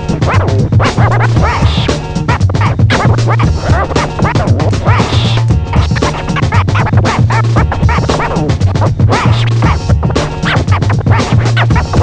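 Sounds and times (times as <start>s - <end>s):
looping beat with bass line: 0.0s - 12.0s
vinyl record scratching: 0.0s - 12.0s.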